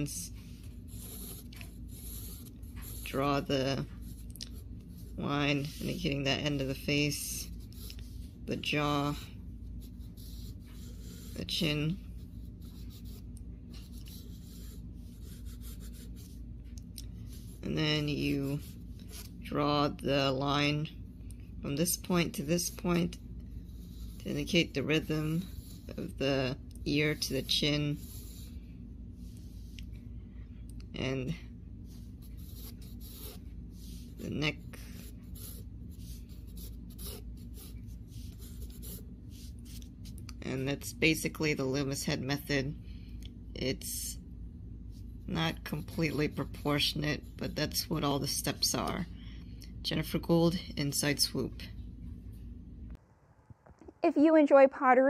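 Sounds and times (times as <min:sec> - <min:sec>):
pencil scratching on paper: 0:00.0 - 0:16.4, 0:17.2 - 0:19.4, 0:21.9 - 0:28.6, 0:31.9 - 0:40.2, 0:45.3 - 0:48.9
steady low hum: 0:00.0 - 0:55.0.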